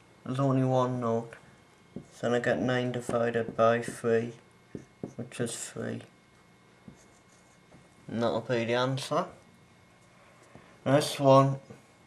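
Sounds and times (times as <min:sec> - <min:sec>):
marker pen strokes on board: 0:02.0 - 0:05.6, 0:06.8 - 0:07.8.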